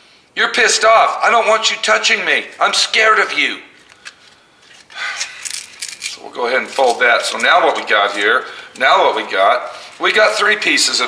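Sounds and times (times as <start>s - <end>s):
sanding disc crinkling: 3.8s - 8.9s.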